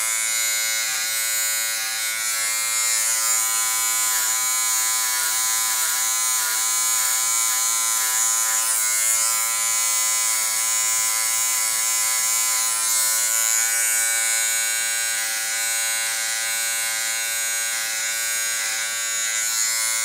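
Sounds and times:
electric hair clipper buzzing: 0:00.0 - 0:20.0.

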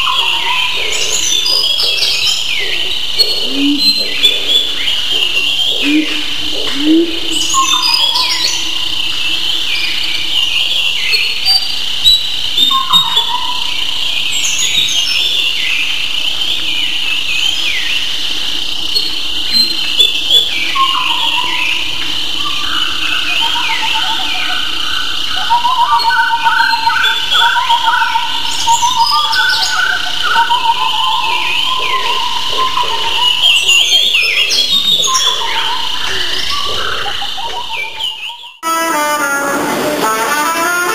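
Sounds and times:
birds chirping and twittering: 0:00.0 - 0:38.6.

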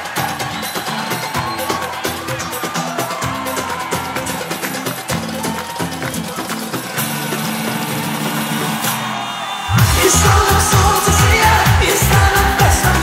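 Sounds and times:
live band playing dance music: 0:00.0 - 0:13.0.

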